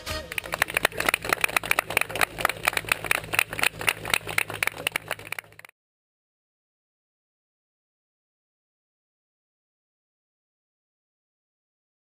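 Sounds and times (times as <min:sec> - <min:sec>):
people clapping: 0:00.0 - 0:05.7
steady low drone: 0:00.0 - 0:05.7.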